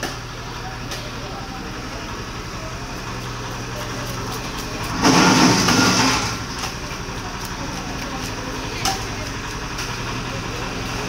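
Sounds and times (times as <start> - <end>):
market din: 0.0 - 11.0.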